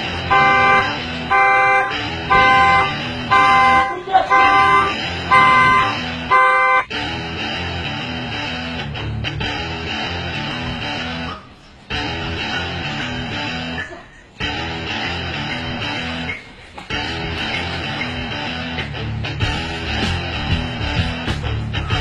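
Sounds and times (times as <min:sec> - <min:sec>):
guitar-led music: 0:00.0 - 0:22.0
car horn blasts: 0:00.1 - 0:06.9.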